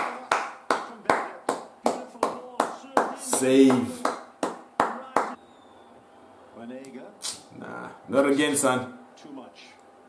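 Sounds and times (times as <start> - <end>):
hand clapping: 0.0 - 5.4.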